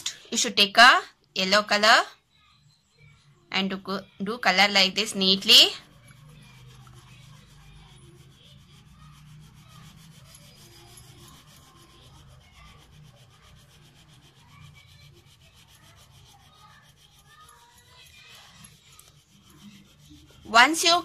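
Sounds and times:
crayon scratching on paper: 4.4s - 21.0s.

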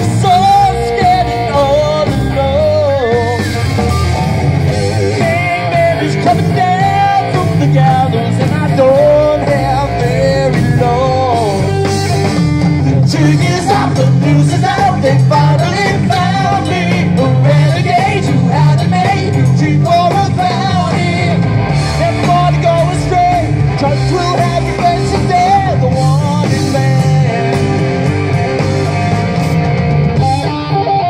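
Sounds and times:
bass guitar: 0.0s - 31.0s
drums: 0.0s - 31.0s
keyboard: 0.0s - 31.0s
pitch-bending lead melody: 0.0s - 31.0s.

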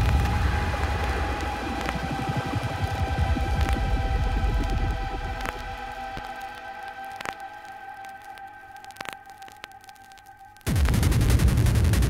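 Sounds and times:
throbbing bass pulse: 0.0s - 6.1s, 10.7s - 12.0s
sustained synth chord: 0.0s - 8.7s.

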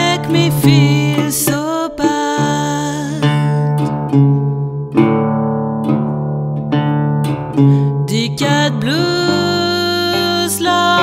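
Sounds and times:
person singing: 0.0s - 4.1s, 7.6s - 11.0s
blues guitar accompaniment: 0.0s - 11.0s.

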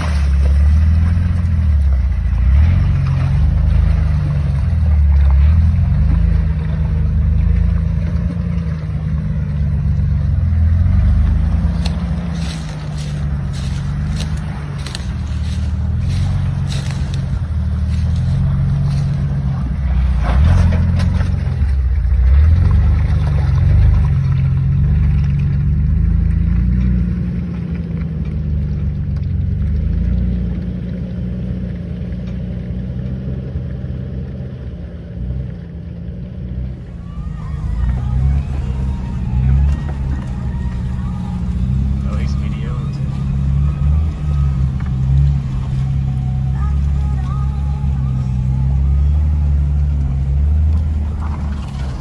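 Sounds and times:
car engine at low revs: 0.0s - 52.0s.

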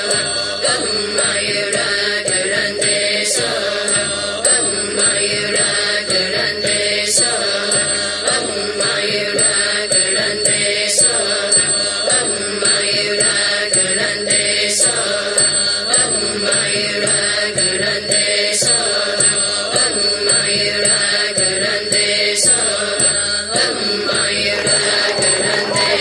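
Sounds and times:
voices chanting: 23.6s - 26.0s.

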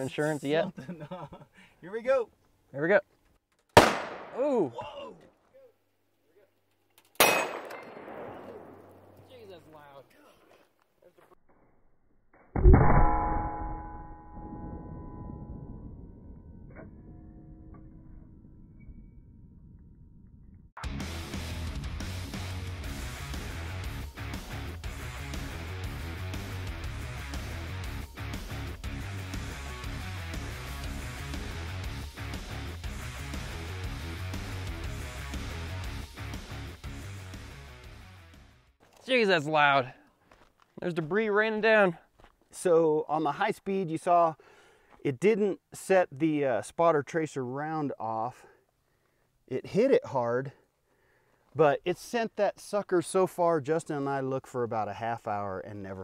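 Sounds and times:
gunshot bang: 3.8s - 4.4s, 7.2s - 9.3s, 12.6s - 13.9s
metallic clang ringing: 12.6s - 15.6s
background music: 20.8s - 38.7s.

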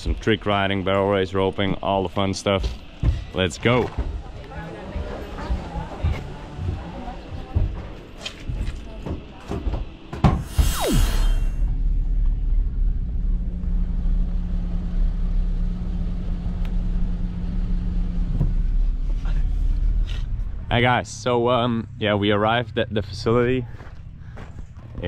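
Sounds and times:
car engine and road rumble: 0.0s - 25.0s
rushing noise with falling tone: 10.4s - 14.2s.

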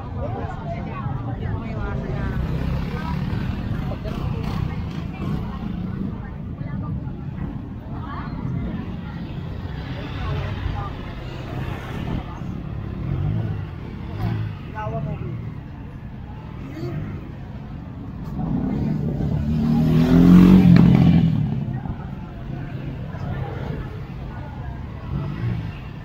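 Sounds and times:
crowd chatter: 0.0s - 26.0s
motorcycle engine revving: 2.3s - 6.1s, 18.2s - 22.0s.

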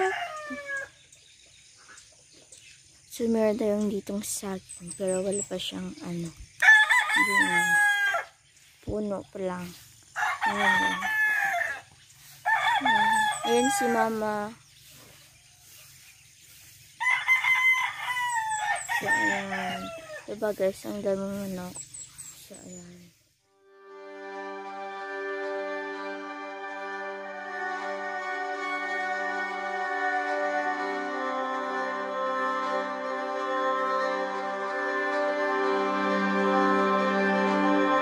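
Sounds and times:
rooster crowing: 0.0s - 1.0s, 6.6s - 8.4s, 10.2s - 14.2s, 17.0s - 20.3s.

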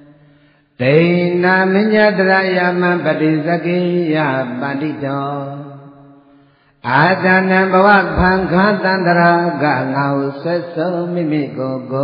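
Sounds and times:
man chanting: 0.8s - 6.2s, 6.8s - 12.0s.

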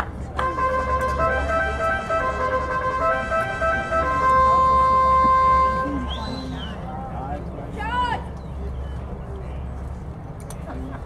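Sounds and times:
organ tune over stadium speakers: 0.4s - 6.4s.

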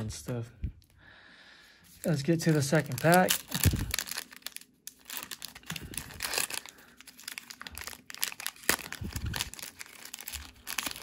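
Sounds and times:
plastic wrapper crackling: 2.0s - 11.0s.

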